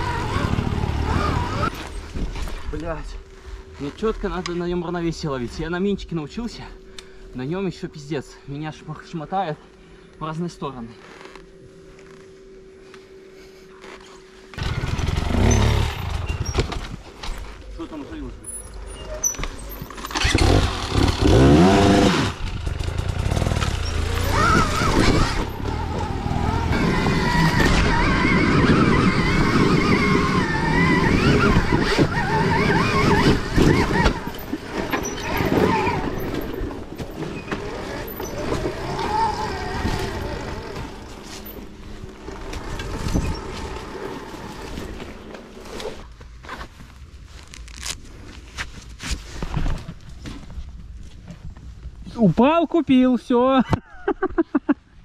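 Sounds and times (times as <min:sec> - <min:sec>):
motorcycle revving loudly: 0:00.0 - 0:01.7, 0:14.6 - 0:16.5, 0:20.2 - 0:36.5, 0:37.5 - 0:41.5
electric motorbike motor whining: 0:00.0 - 0:02.6, 0:13.8 - 0:17.0, 0:18.8 - 0:46.1.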